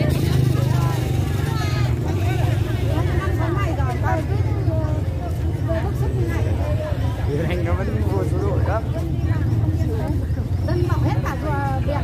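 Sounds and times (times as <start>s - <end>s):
many people talking: 0.0s - 12.0s
motor scooter engines humming: 0.0s - 12.0s.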